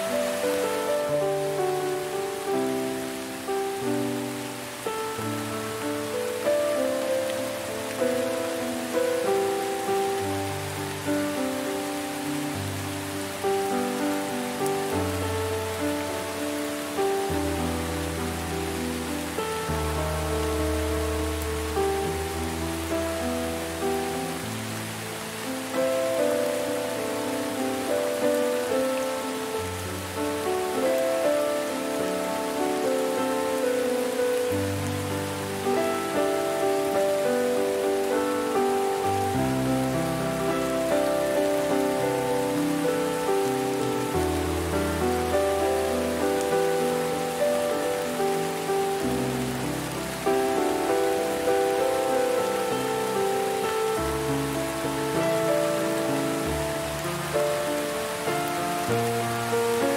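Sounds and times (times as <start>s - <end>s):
soft slow instrumental music: 0.0s - 59.9s
steady rain falling: 0.0s - 59.9s.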